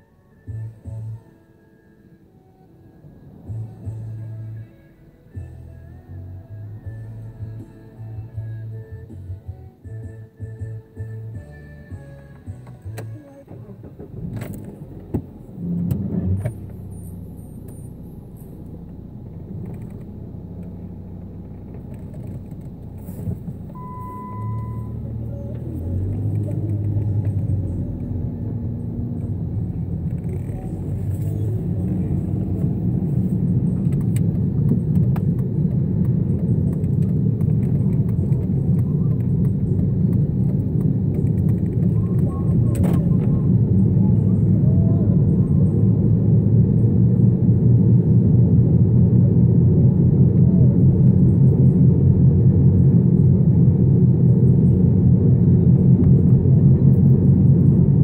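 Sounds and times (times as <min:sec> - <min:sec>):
car engine and road rumble: 0:00.0 - 0:58.0
short beep: 0:23.7 - 0:25.2.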